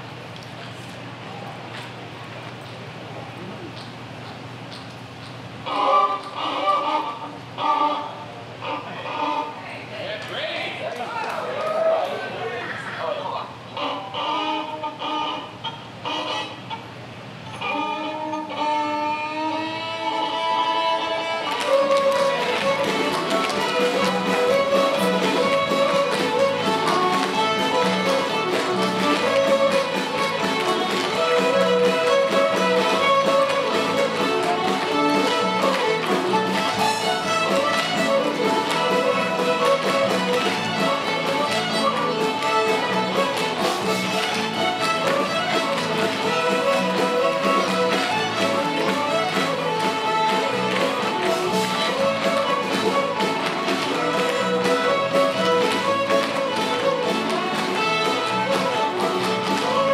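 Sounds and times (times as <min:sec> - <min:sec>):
fiddle ensemble playing: 0:05.6 - 0:09.6, 0:13.7 - 0:16.8, 0:17.5 - 0:59.9
guitar: 0:10.2 - 0:59.9
cello: 0:17.6 - 0:59.9.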